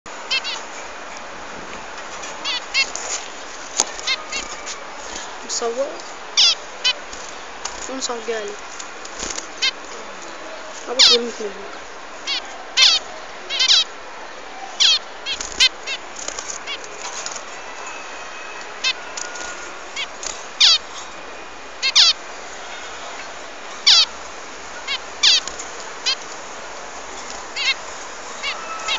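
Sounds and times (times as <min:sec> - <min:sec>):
bird chirping: 0:00.1 - 0:01.0, 0:02.2 - 0:11.6, 0:12.2 - 0:13.9, 0:14.6 - 0:28.9
steady hiss: 0:00.1 - 0:28.9.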